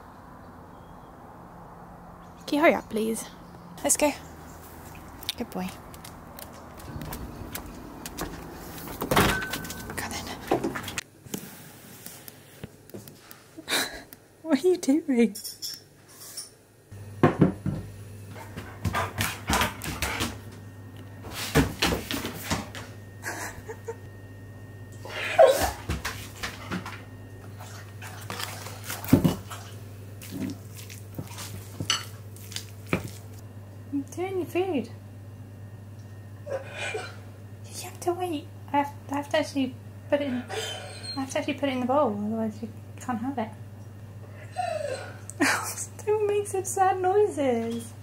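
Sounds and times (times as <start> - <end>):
dog claws tapping on concrete: 5.2 - 8.3.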